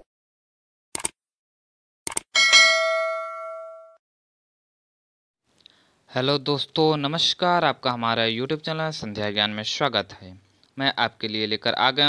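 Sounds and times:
bright bell ding: 2.4s - 4.0s.

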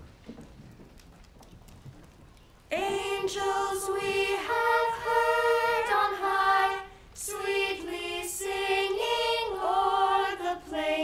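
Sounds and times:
children's footsteps on wooden floor: 0.0s - 3.1s.

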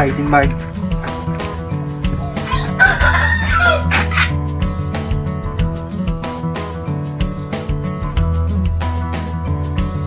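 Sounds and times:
background music: 0.0s - 10.0s
rooster crowing: 2.2s - 4.3s.

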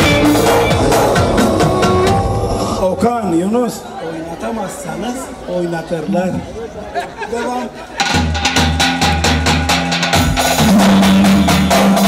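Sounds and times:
brisk percussion beat: 0.0s - 2.8s, 8.0s - 12.0s
steady bass notes: 0.0s - 2.9s, 8.1s - 12.0s
live band music: 0.0s - 3.0s, 8.0s - 12.0s.

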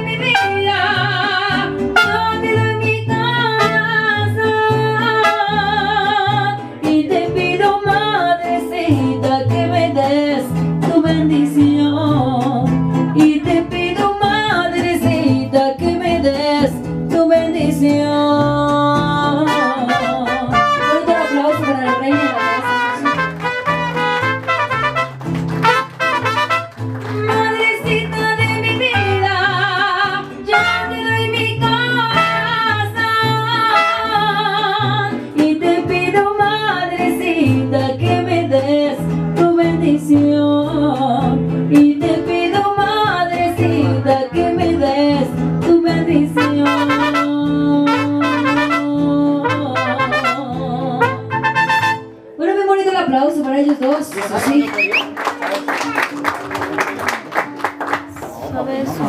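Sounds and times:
woman singing into microphone: 0.0s - 22.8s, 27.2s - 51.4s
strummed guitars: 0.0s - 52.4s.

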